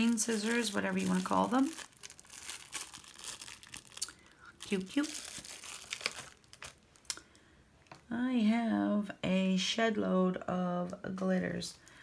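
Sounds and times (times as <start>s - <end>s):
plastic wrapping crinkling: 0.0s - 7.2s.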